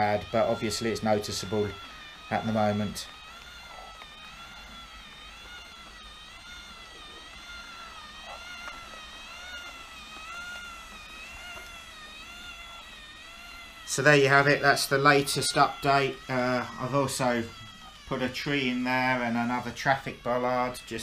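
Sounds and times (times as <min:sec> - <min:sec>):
motor and gears whining: 0:00.0 - 0:21.0.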